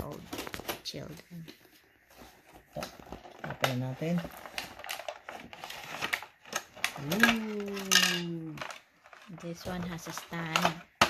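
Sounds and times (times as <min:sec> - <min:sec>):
packaging crinkling: 0:02.2 - 0:10.7.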